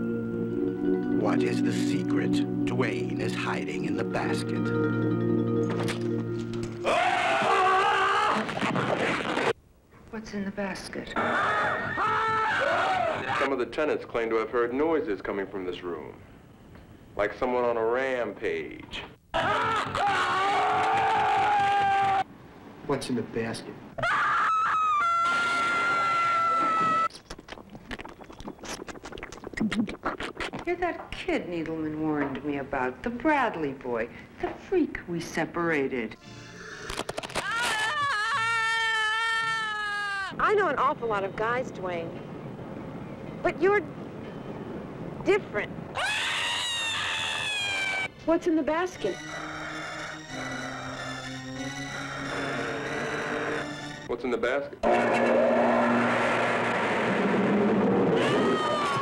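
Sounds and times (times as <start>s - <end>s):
man screaming: 6.8s - 8.5s, 11.2s - 13.5s, 19.4s - 22.2s, 58.2s - 59.0s
woman screaming high-pitched: 24.0s - 27.1s, 37.4s - 40.4s, 58.2s - 59.0s.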